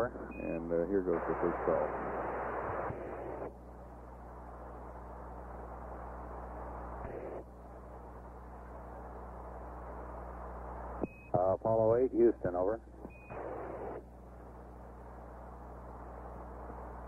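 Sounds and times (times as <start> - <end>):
radio static hiss: 0.0 - 17.0
steady low hum: 0.0 - 17.0.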